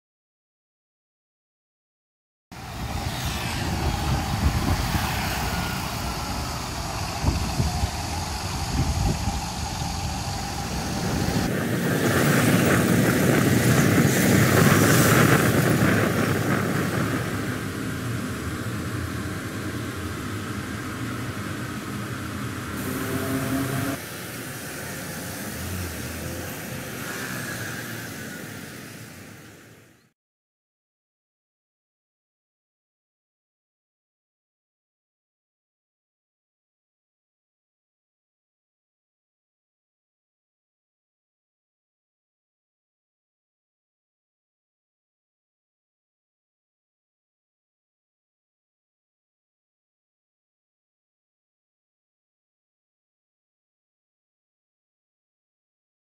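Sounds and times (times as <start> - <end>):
vehicle passing loudly: 2.6 - 13.3, 18.0 - 24.1
passing cars and scooters: 2.6 - 30.0.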